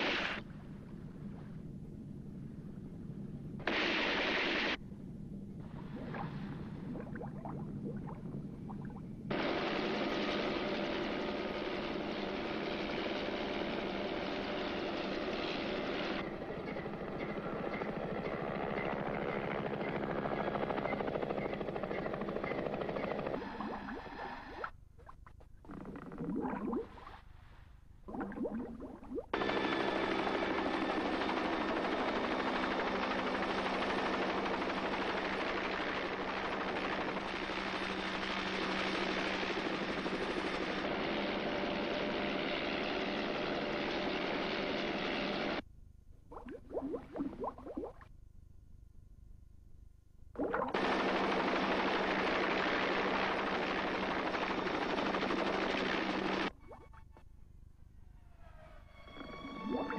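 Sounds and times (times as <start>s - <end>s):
helicopter engine and rotor: 9.3s - 23.6s, 29.4s - 45.6s, 50.8s - 56.5s
underwater scuba breathing bubbles: 25.7s - 27.2s.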